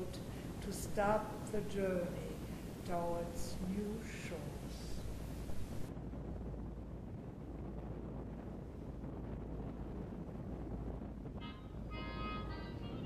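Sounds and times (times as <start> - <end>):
wind rumble on microphone: 0.0 - 13.0
music: 11.4 - 13.0.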